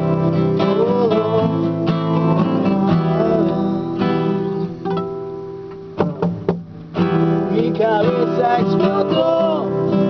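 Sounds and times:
classical guitar playing: 0:00.0 - 0:10.0.

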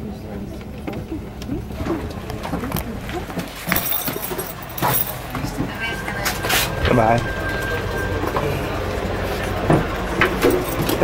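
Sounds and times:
low mechanical drone: 0:00.0 - 0:11.0
noisy rumble: 0:00.0 - 0:11.0.

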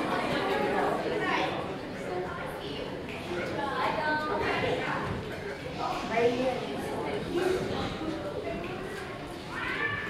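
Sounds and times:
indistinct talking in a hall: 0:00.0 - 0:10.0.

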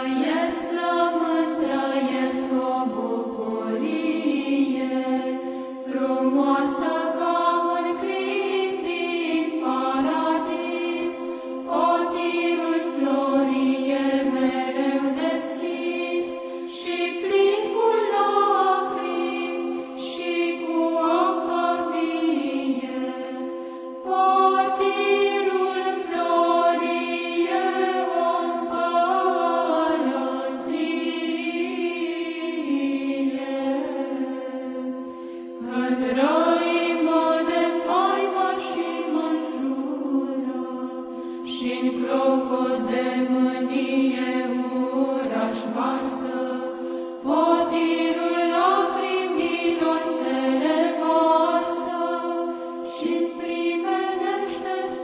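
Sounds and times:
choir chanting: 0:00.0 - 0:55.0.

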